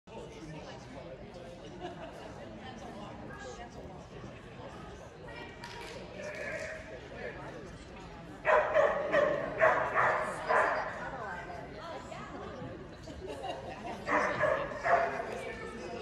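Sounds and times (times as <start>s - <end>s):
background chatter: 0.1s - 16.0s
dog barking: 8.4s - 11.0s, 14.1s - 15.2s.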